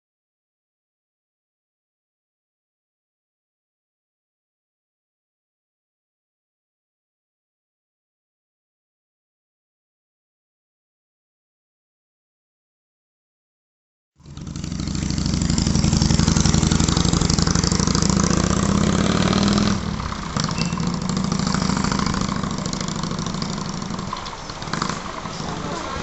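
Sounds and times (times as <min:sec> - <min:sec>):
motorcycle engine pulling away: 0:14.2 - 0:26.0.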